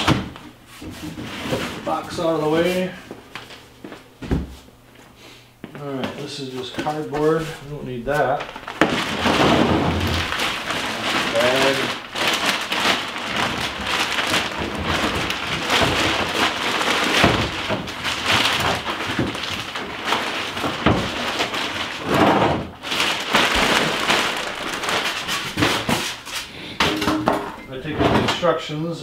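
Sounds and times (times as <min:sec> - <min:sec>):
plastic bag crinkling: 0:06.2 - 0:26.7.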